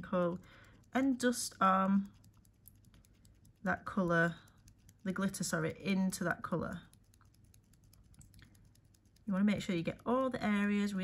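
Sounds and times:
glitter ticking onto nail: 0:00.0 - 0:11.0.

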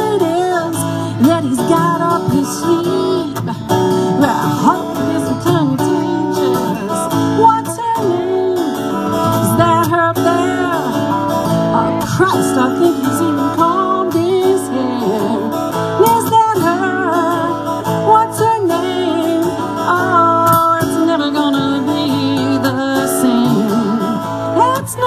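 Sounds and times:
acoustic guitars playing: 0:00.0 - 0:25.0.

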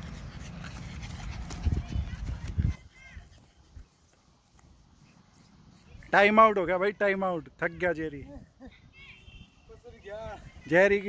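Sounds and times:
dog running on grass: 0:00.0 - 0:06.2
wind rumble on microphone: 0:01.0 - 0:03.9.

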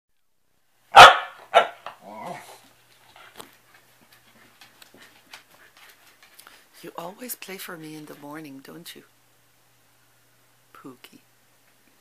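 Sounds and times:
dog barking: 0:00.9 - 0:02.0
dog growling: 0:01.8 - 0:02.7.

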